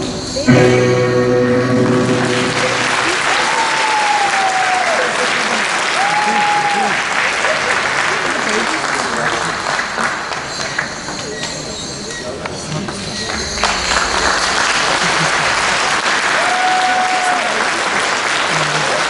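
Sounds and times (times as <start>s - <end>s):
high cheers: 1.4s - 8.5s, 13.4s - 19.0s
audience applauding: 1.6s - 11.7s, 12.8s - 19.0s.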